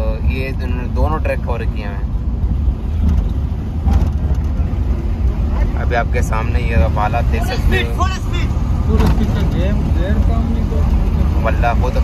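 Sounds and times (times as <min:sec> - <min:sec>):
car engine and tyres rumbling: 0:00.0 - 0:12.0
people's voices: 0:04.2 - 0:12.0.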